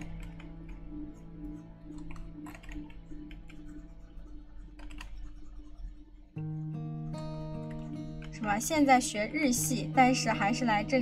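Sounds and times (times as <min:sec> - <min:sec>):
computer keyboard keys clicking: 0:00.0 - 0:03.9, 0:04.6 - 0:05.8
quiet background music: 0:00.0 - 0:11.0.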